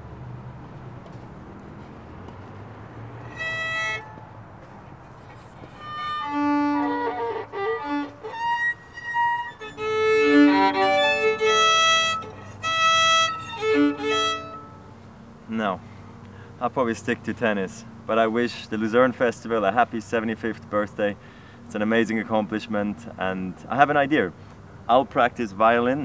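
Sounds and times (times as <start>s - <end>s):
bowed violin notes: 3.2s - 4.3s, 5.6s - 14.9s.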